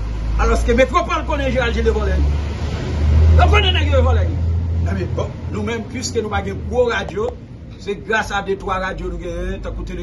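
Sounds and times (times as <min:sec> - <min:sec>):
man talking: 0:00.4 - 0:02.4, 0:03.3 - 0:10.0.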